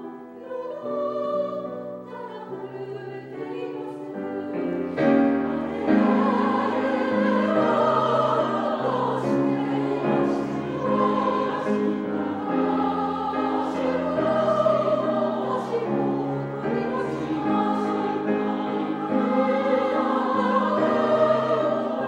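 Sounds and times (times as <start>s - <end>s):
piano accompaniment: 0.0s - 22.0s
women's choir singing: 0.0s - 22.0s.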